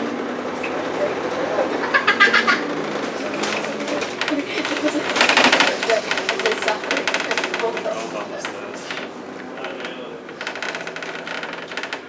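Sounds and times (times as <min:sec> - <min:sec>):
fast rattle of sharp clicks: 0:03.3 - 0:09.1.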